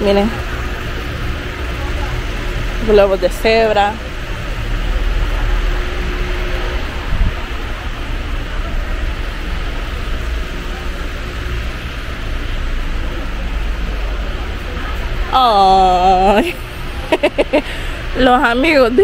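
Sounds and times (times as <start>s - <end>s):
shop background rumble and hiss: 0.0s - 19.0s.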